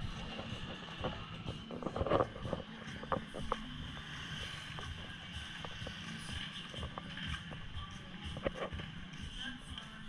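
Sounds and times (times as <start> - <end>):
motorcycle traffic hum: 0.0 - 10.0.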